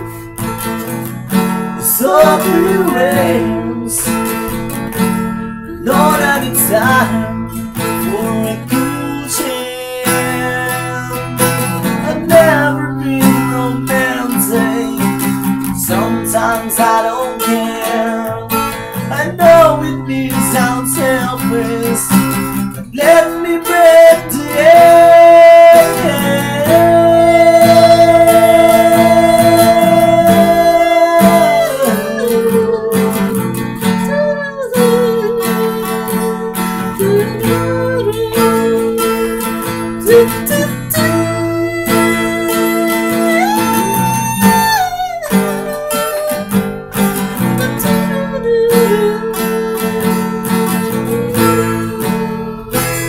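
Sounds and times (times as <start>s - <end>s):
strummed acoustic guitar: 0.0s - 53.0s
person singing wordless notes: 1.8s - 4.5s, 5.6s - 46.4s.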